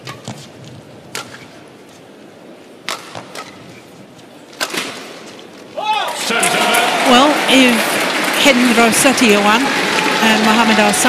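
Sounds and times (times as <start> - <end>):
racket striking shuttlecock: 0.0 - 0.5, 1.1 - 1.6, 2.8 - 3.7
low arena hum: 0.0 - 11.0.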